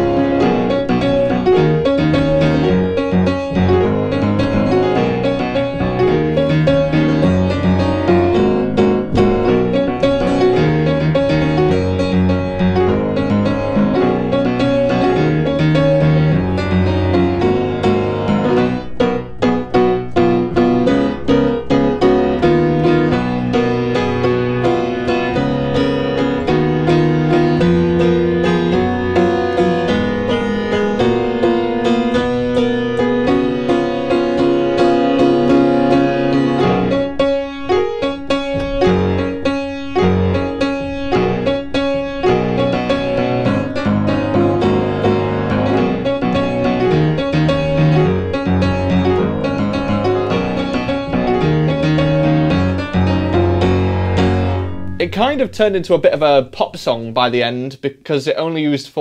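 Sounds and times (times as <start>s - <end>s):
piano chord stabs: 0.0s - 57.1s
pop piano playing: 0.0s - 57.8s.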